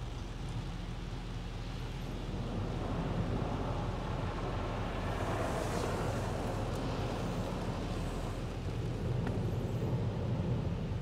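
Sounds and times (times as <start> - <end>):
water rushing over windshield: 2.3 - 10.9.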